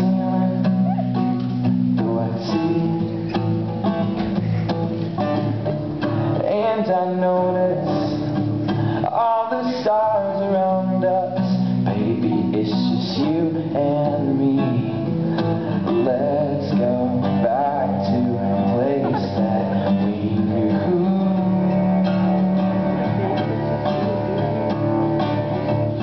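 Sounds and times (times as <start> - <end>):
man singing: 0.0 - 3.5, 6.2 - 24.6
strummed acoustic guitar: 0.0 - 26.0.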